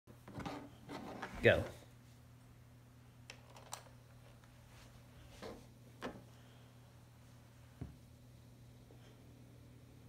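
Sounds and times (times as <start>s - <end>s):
steady low hum: 0.2s - 10.0s.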